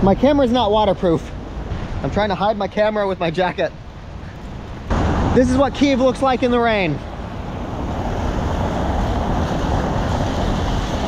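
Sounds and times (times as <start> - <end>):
wind rumble on microphone: 3.9 - 11.0.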